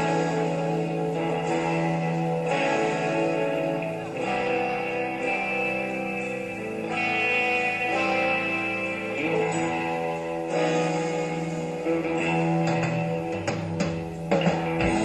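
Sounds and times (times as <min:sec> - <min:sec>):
guitar sustained chords: 0:00.0 - 0:15.0
live band slow song: 0:00.0 - 0:15.0.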